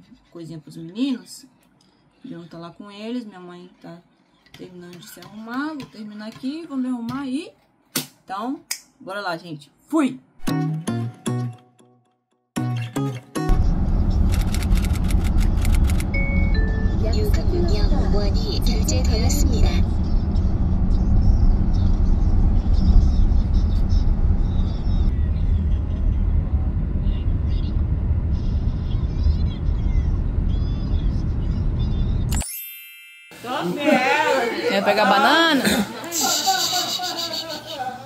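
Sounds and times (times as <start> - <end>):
car road and engine rumble: 13.5 - 32.3
short falling beeps: 16.1 - 17.0.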